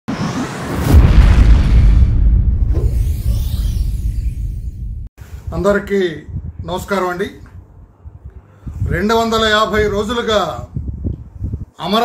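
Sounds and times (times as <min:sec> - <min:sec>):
whoosh of noise: 0:00.1 - 0:05.6
deep bass boom: 0:00.7 - 0:05.1.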